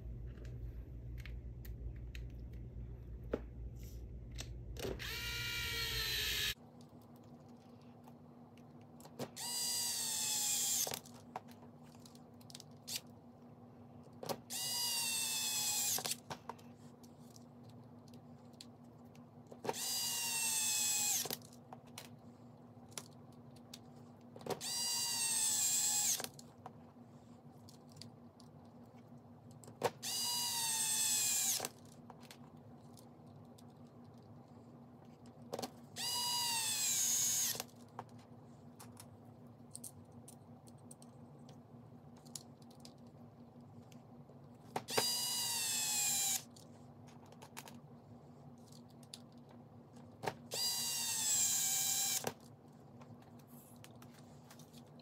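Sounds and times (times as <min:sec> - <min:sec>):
electric screwdriver whining: 0:05.0 - 0:06.6, 0:09.4 - 0:10.9, 0:14.5 - 0:16.1, 0:19.7 - 0:21.3, 0:24.6 - 0:26.3, 0:30.0 - 0:31.7, 0:36.0 - 0:37.6, 0:44.9 - 0:46.4, 0:50.5 - 0:52.3.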